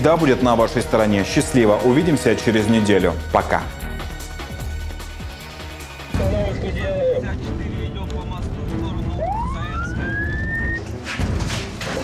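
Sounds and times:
police siren wailing: 6.2 - 7.4, 9.1 - 10.8.

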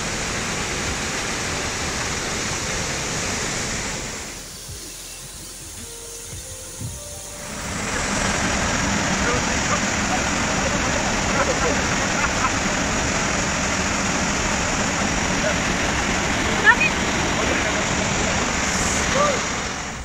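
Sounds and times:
waterfall and stream rushing: 0.0 - 20.0.

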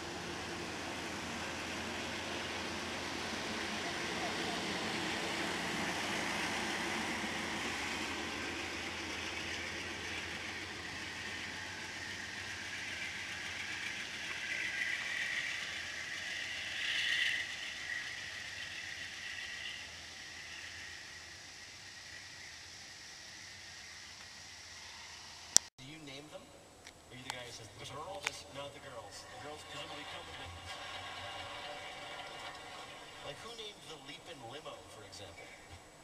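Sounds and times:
train cars rolling on rails: 0.0 - 25.6, 27.1 - 36.0.

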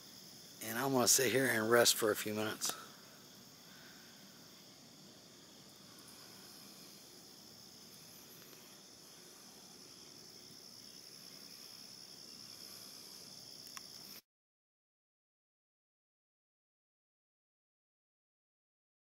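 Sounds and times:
insects trilling: 0.0 - 14.2.

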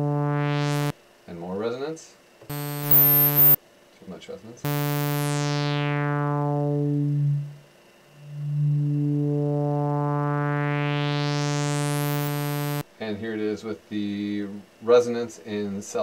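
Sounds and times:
synthesizer filter sweep: 0.0 - 0.9, 2.5 - 3.6, 4.7 - 7.6, 8.2 - 12.8.

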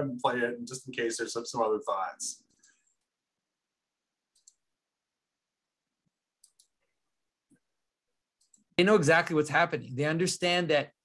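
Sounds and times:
computer mouse clicks: 4.3 - 4.7, 6.1 - 7.6, 8.4 - 8.7.

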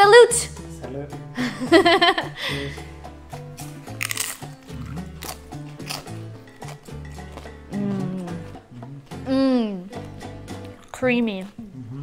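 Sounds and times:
background music: 0.0 - 12.0
crunching tortilla chips: 3.9 - 7.5.

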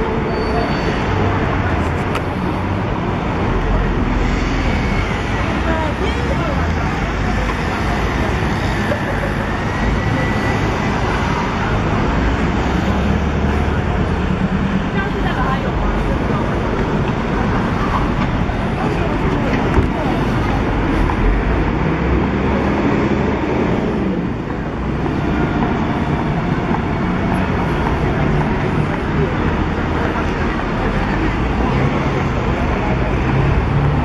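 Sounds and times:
indistinct voices: 0.0 - 34.0
passing cars: 0.0 - 34.0.

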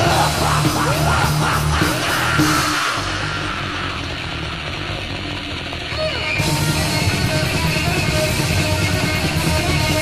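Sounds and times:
distorted bass guitar: 0.0 - 10.0
distorted electric guitar: 0.0 - 10.0.

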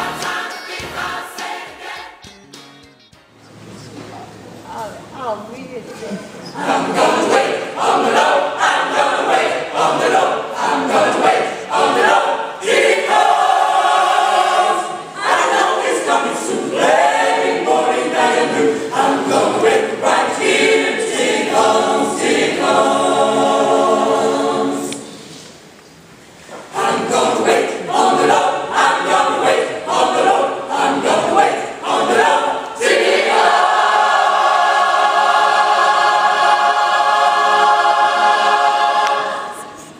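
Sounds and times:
gospel choir singing: 0.0 - 2.4, 6.3 - 25.8, 26.4 - 39.9.

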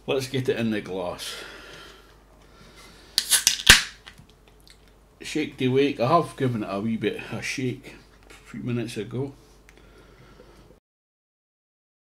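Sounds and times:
can opening hiss and crack: 3.2 - 4.4.

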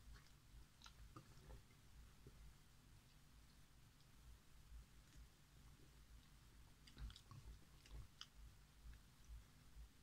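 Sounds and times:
lip and tongue clicks: 6.2 - 9.0.

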